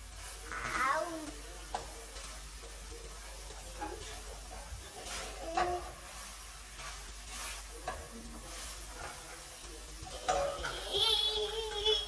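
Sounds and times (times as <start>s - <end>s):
food cooking hiss: 0.0s - 12.0s.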